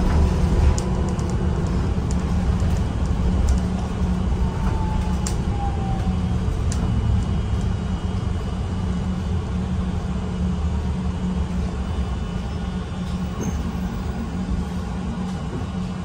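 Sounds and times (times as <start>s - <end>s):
bus engine and road rumble: 0.0s - 16.0s.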